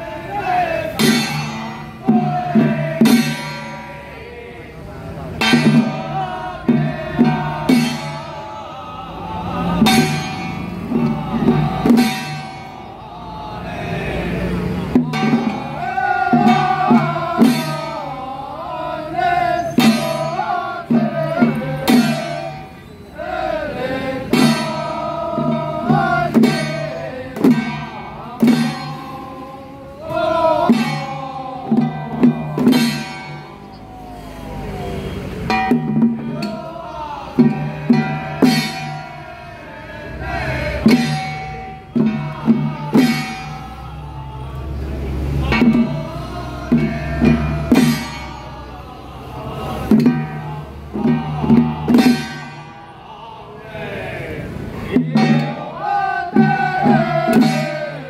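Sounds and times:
group chanting in unison: 0:00.0 - 0:58.0
hand drum strikes: 0:05.4 - 0:08.3, 0:09.8 - 0:12.7, 0:14.9 - 0:18.0, 0:24.3 - 0:29.1, 0:30.1 - 0:33.7, 0:35.5 - 0:36.7, 0:40.8 - 0:43.7, 0:46.7 - 0:48.6, 0:49.9 - 0:50.4, 0:51.0 - 0:52.6, 0:55.0 - 0:58.0.

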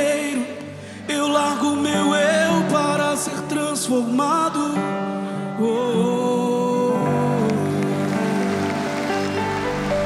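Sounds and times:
worship band playing sustained chords: 0:06.6 - 0:10.0.

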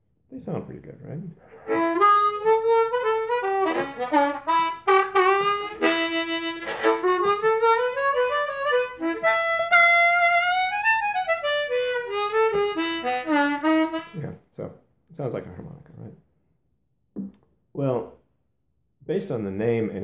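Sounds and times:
harmonica bluesy bent notes: 0:01.4 - 0:14.3.

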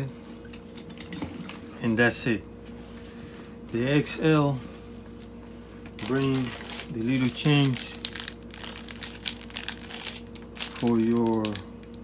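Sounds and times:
plastic bag crinkling: 0:05.9 - 0:12.0.

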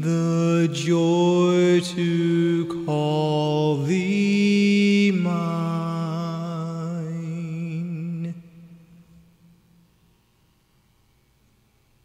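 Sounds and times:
person singing a hymn: 0:00.0 - 0:09.0.

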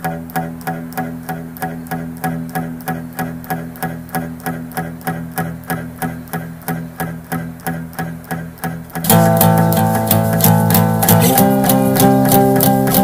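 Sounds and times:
picked guitar pattern: 0:00.0 - 0:13.0
strummed guitar: 0:00.0 - 0:13.0.

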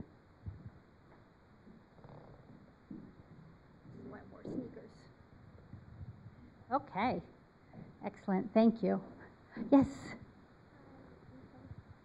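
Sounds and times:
soft low sounds: 0:00.0 - 0:08.1.

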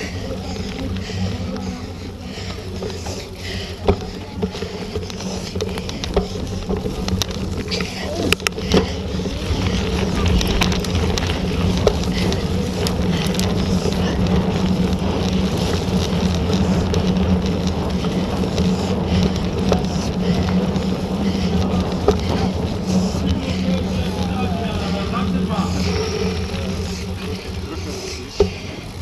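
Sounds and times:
bike rattles and clicks: 0:00.0 - 0:29.0
bike tyres rumbling on dirt: 0:00.0 - 0:29.0.

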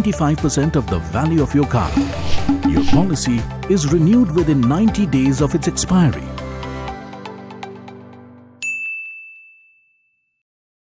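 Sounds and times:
background music: 0:00.0 - 0:08.5.

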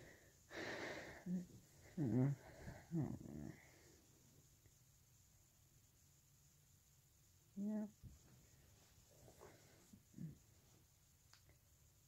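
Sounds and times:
person humming nasal mm: 0:02.0 - 0:03.6.

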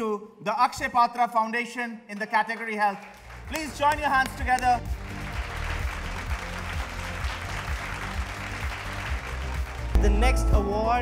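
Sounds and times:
audience applauding: 0:02.6 - 0:10.3
background music: 0:03.1 - 0:11.0.

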